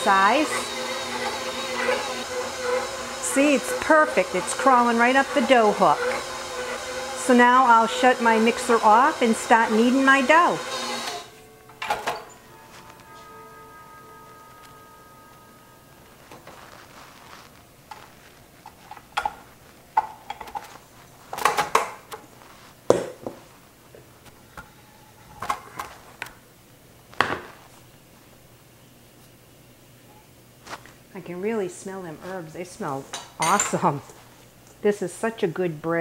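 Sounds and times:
metal bowl clanking: 0:33.1 - 0:34.2.

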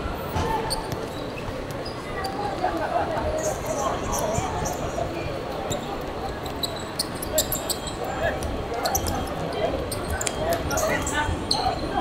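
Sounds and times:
shoes squeaking on court: 0:05.7 - 0:11.9.

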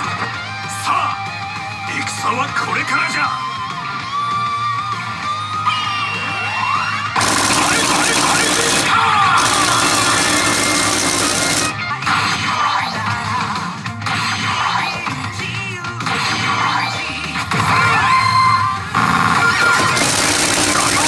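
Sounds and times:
jackpot fanfare: 0:07.2 - 0:11.8, 0:19.7 - 0:21.0
pachinko game music: 0:07.2 - 0:11.8, 0:19.4 - 0:21.0.

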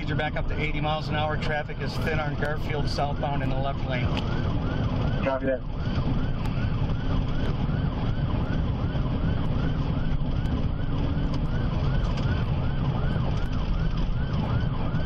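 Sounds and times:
engine and tyres rumbling: 0:00.0 - 0:15.0
police siren sweeping: 0:00.0 - 0:15.0.

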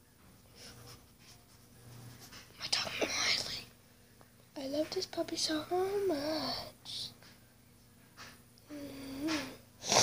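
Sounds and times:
girl whispering: 0:02.6 - 0:03.8
girl speaking: 0:04.6 - 0:07.2.

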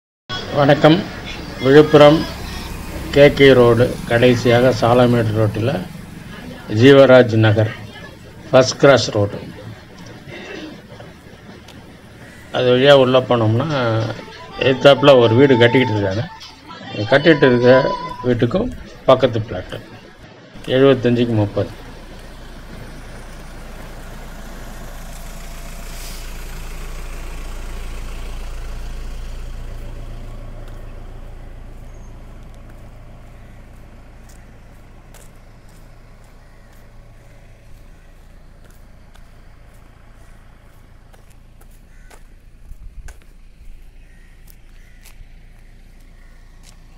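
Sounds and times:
car driving past: 0:00.4 - 0:14.8, 0:17.9 - 0:46.9.

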